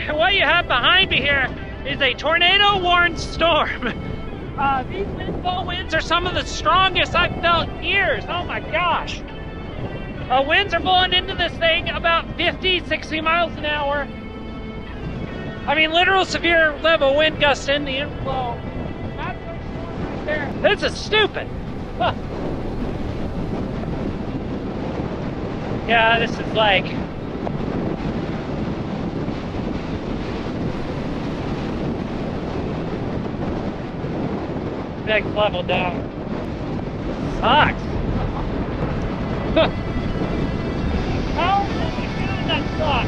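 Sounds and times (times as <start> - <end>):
strong wind buffeting microphone: 0.0 - 43.0.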